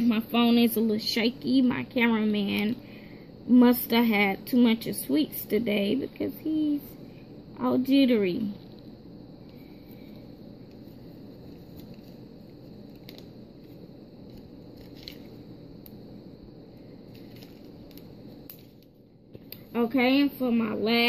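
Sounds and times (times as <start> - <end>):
low room hiss: 0.0 - 21.0.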